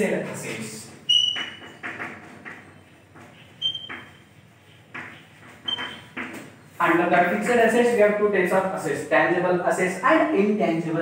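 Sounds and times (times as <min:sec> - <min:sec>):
chalk tapping and scraping: 0:00.5 - 0:06.6
chalk squeaks: 0:01.1 - 0:06.2.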